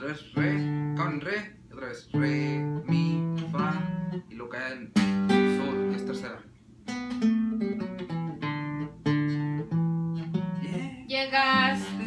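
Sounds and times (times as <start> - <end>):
acoustic guitar picked notes: 0.0 - 12.0.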